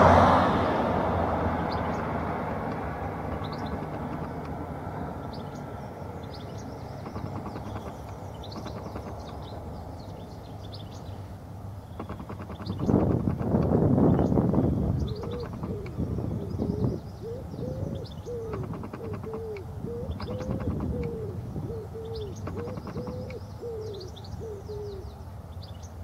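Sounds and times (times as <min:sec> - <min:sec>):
high bird twittering: 0:02.7 - 0:04.6, 0:05.2 - 0:25.1
bird cooing: 0:15.0 - 0:25.2.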